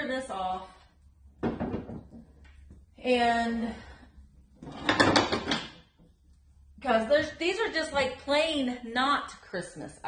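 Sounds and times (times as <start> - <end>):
wooden knock: 1.4 - 2.2.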